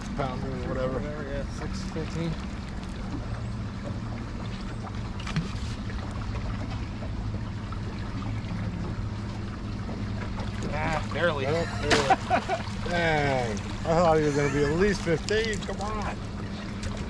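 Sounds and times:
boat motor humming: 0:00.0 - 0:17.0
water noise: 0:00.0 - 0:17.0
wind: 0:00.0 - 0:17.0.

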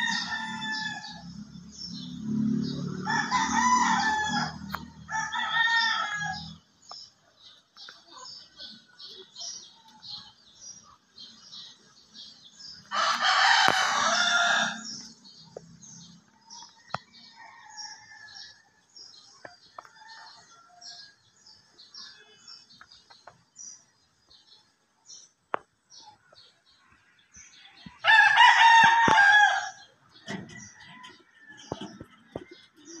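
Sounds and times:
rooster crowing: 0:00.0 - 0:01.4, 0:02.9 - 0:06.6, 0:12.9 - 0:15.0, 0:28.0 - 0:32.0.

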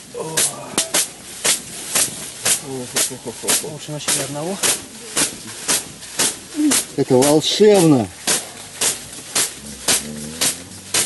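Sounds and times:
bath brooms swishing: 0:00.0 - 0:11.0
person groaning: 0:00.1 - 0:00.9.

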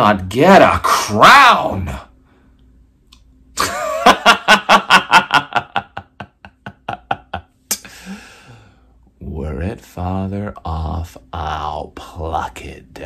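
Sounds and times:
man laughing: 0:03.6 - 0:08.2
sharp intake of breath: 0:07.8 - 0:09.0.

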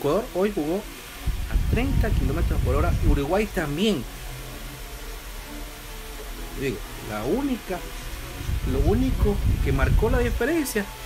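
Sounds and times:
faint even hiss: 0:00.0 - 0:11.0
steady low hum: 0:00.0 - 0:11.0.

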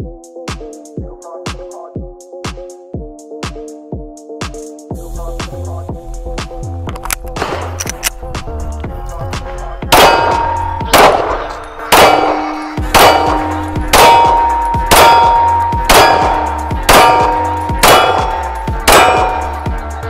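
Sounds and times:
pistol shots: 0:07.4 - 0:08.0, 0:09.9 - 0:19.6
ringing tone: 0:10.3 - 0:19.7.

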